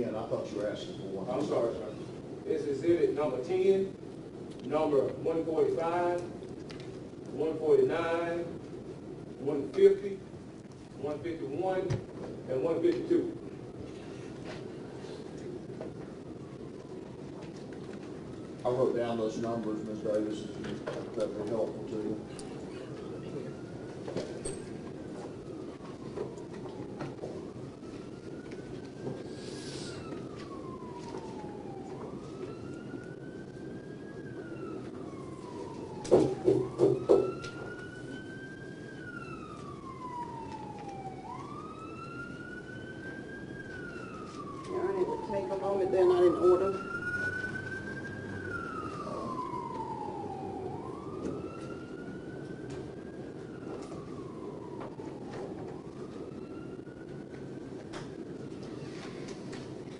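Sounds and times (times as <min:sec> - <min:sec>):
siren wailing: 0:00.0 - 0:59.9
steady low hum: 0:00.0 - 0:59.9.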